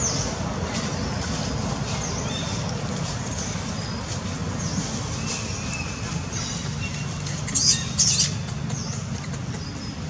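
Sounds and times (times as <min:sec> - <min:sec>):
baby monkey squeaking: 0:07.4 - 0:08.4.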